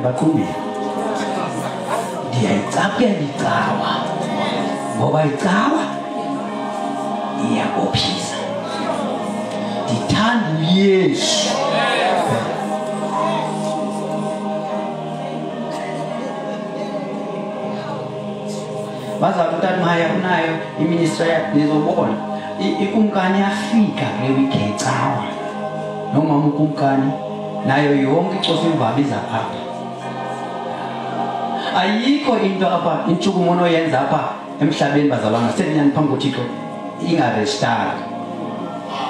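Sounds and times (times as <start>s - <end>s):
man speaking through microphone: 0.0s - 0.7s, 1.4s - 6.0s, 7.3s - 8.8s, 9.8s - 12.6s, 19.2s - 25.5s, 26.1s - 29.7s, 31.7s - 38.1s
choir singing long held notes: 0.0s - 39.0s.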